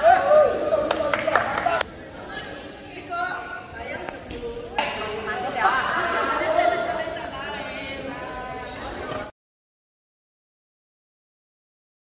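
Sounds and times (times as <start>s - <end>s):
chatter of voices: 0.0s - 9.3s.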